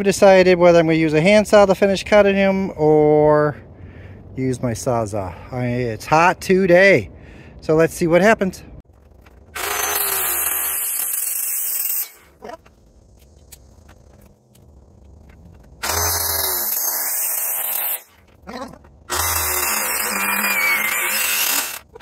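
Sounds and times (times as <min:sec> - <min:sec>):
circular saw cutting wood: 0:09.5 - 0:12.4, 0:15.8 - 0:22.0.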